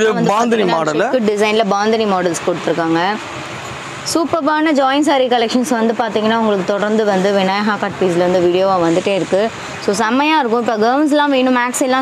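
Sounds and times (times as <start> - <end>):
person speaking: 0.0 - 1.8.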